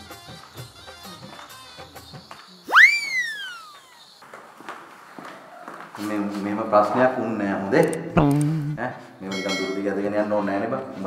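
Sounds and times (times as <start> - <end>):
sweeping whistle: 2.7 - 4.0.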